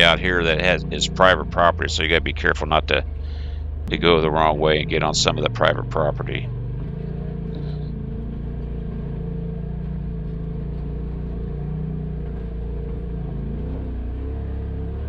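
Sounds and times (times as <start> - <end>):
off-road vehicle engine running: 0.0 - 15.0.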